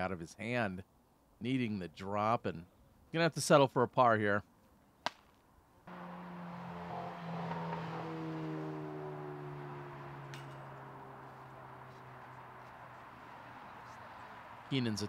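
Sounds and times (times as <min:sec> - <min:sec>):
vehicle passing: 0:05.9 - 0:15.0.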